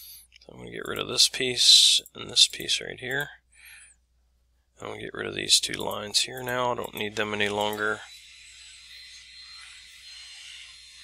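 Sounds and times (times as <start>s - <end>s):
thin high tone: 5.8s - 11.0s.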